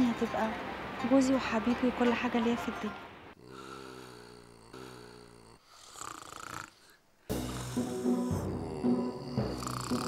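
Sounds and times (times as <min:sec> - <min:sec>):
man snoring: 0:03.4 - 0:10.0.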